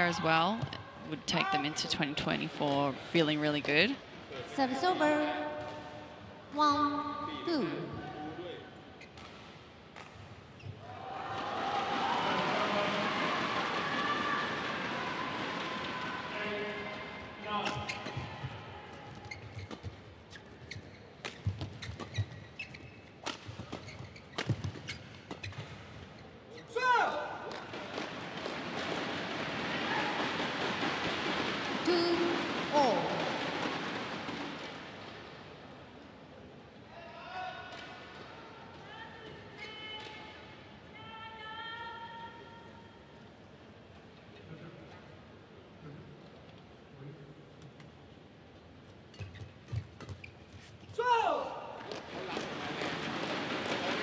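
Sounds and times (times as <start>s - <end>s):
crowd cheering and shouting: 10.9s - 16.4s.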